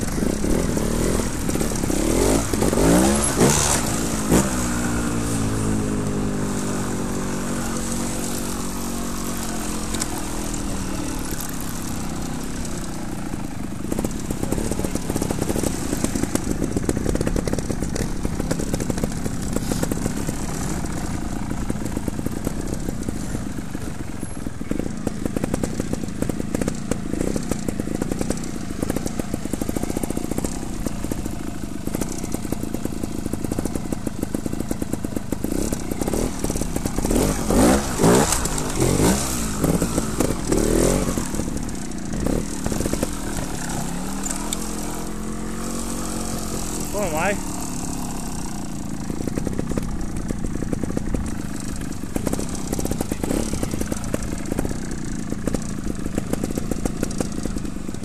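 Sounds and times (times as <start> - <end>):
motorcycle engine revving: 0.0 - 58.0.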